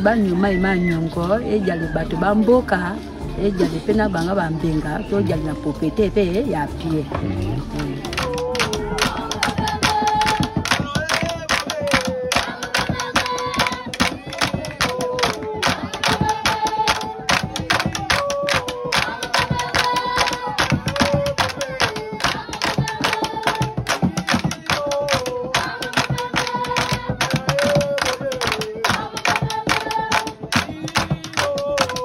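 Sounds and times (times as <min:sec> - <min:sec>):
group singing: 0:00.0 - 0:32.0
rhythmic hand clapping: 0:02.1 - 0:32.0.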